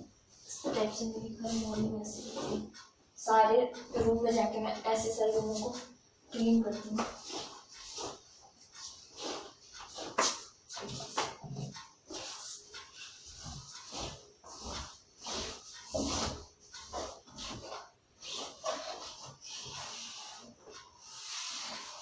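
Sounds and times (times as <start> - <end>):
cloth swishing while dusting: 0.5 - 2.7, 12.1 - 20.4.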